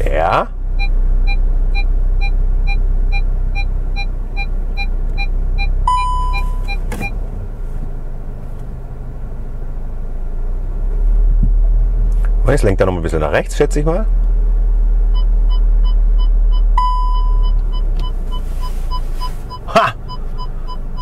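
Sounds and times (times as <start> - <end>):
low engine and cabin rumble: 0.0 - 21.0
parking sensor beeping: 0.7 - 7.3, 15.1 - 21.0.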